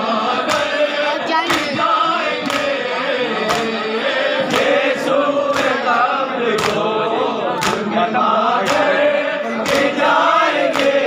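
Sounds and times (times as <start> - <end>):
men chanting together: 0.0 - 11.0
hands slapping chests: 0.4 - 0.8, 1.4 - 2.8, 3.4 - 3.8, 4.4 - 4.8, 5.5 - 5.9, 6.5 - 6.9, 7.6 - 7.9, 8.6 - 9.0, 9.6 - 11.0.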